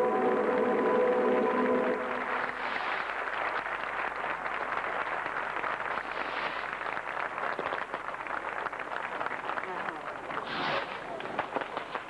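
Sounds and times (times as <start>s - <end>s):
stadium crowd applauding: 0.0s - 12.0s.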